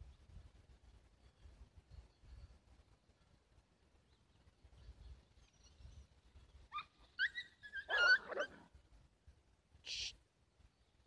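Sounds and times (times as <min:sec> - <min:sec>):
dog whining and yelping: 0:06.7 - 0:08.6.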